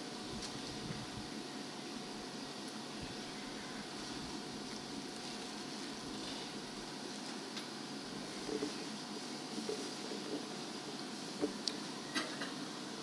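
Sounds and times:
faint hum: 0.0 - 13.0
room noise hiss: 0.0 - 13.0.

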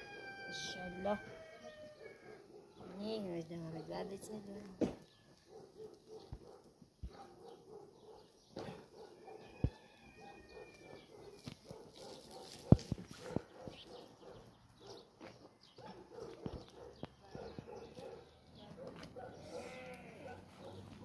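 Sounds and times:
livestock bleating: 19.4 - 20.4.

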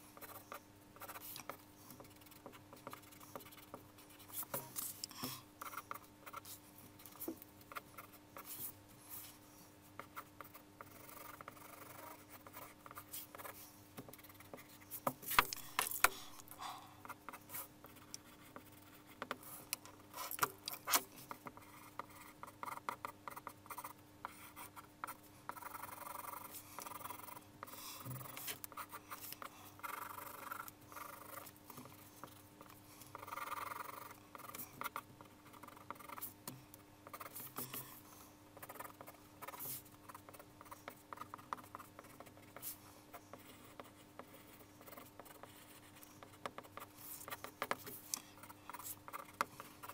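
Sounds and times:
pencil scratching on paper: 0.0 - 16.4, 17.0 - 36.4, 37.0 - 49.9.

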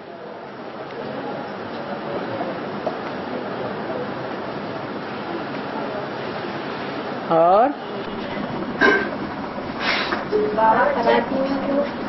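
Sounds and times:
faint indistinct voices: 0.0 - 12.0
steady background hiss: 0.0 - 12.0.

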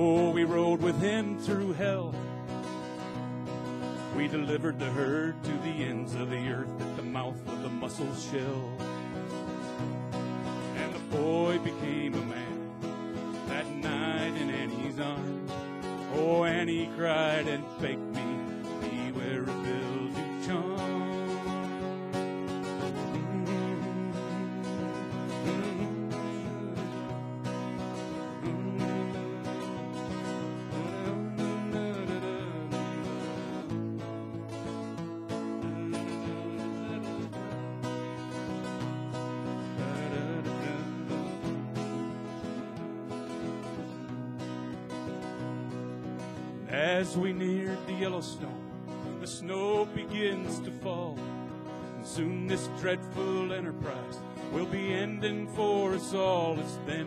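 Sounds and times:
acoustic guitar country instrumental: 0.0 - 57.0.

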